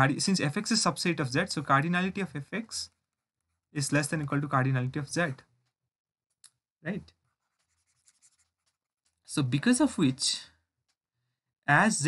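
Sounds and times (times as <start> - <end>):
stylus scratching tablet screen: 7.1 - 9.3.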